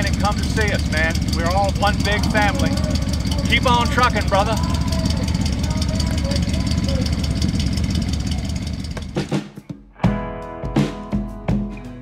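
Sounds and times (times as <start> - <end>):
van engine rumbling: 0.0 - 9.3.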